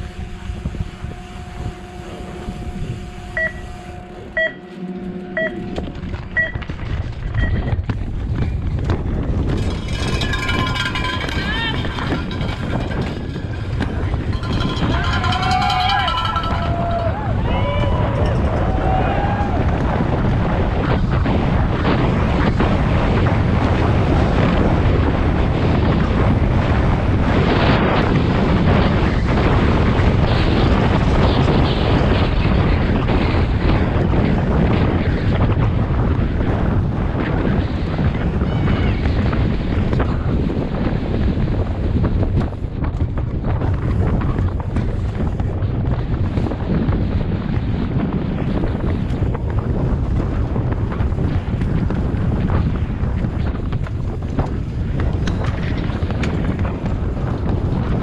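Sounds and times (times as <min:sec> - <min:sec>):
bike tyres on dirt trail: 0:00.0 - 0:58.0
wind on microphone: 0:00.0 - 0:58.0
timer short beeps: 0:03.4 - 0:03.7, 0:04.4 - 0:05.8, 0:06.4 - 0:06.6, 0:07.4 - 0:07.7
spectators shouting and cheering: 0:14.4 - 0:20.2.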